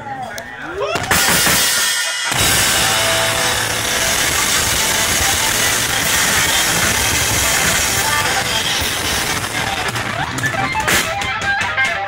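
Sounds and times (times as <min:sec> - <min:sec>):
blues rock band playing: 0:01.1 - 0:12.0
distorted electric guitar: 0:01.1 - 0:12.0.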